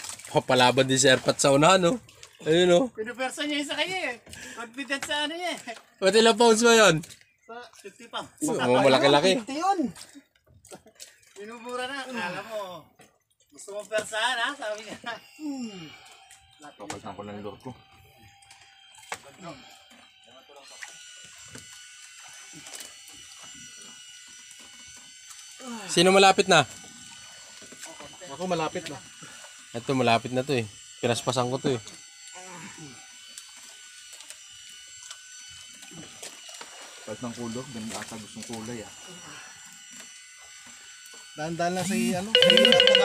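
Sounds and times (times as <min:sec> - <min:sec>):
fishing reel cranking: 0:42.4 - 0:43.0.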